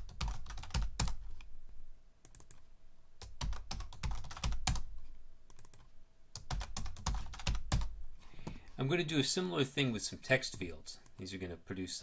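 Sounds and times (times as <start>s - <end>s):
typing on computer keyboard: 0.0s - 1.2s, 3.2s - 4.9s, 5.5s - 7.9s.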